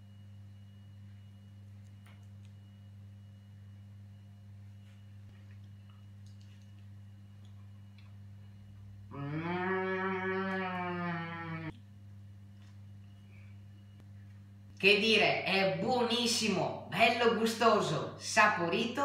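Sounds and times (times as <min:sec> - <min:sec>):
faint electrical hum: 0:00.0 - 0:19.0
boy humming while chewing: 0:09.1 - 0:11.7.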